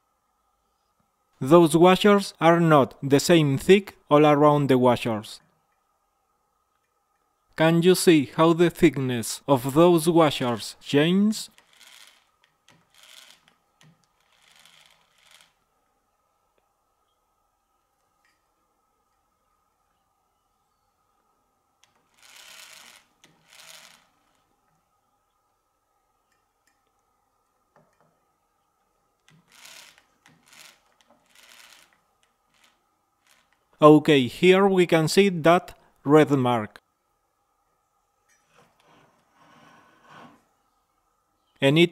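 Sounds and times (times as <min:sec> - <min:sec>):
fingers scraping metal saw disc: 0:14.1 - 0:15.6.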